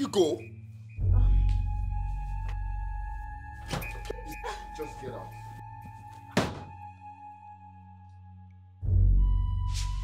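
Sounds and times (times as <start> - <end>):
background film music: 0.0 - 10.0.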